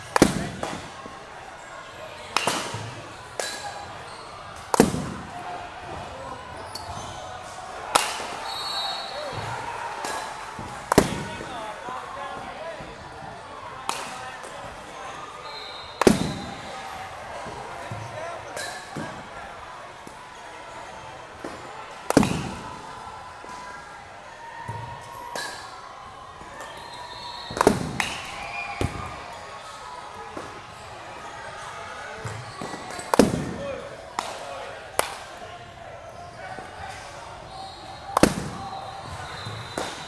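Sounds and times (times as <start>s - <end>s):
bat cracking against ball: 4.6s - 5.3s, 21.5s - 22.7s, 27.5s - 29.0s, 38.2s - 38.6s.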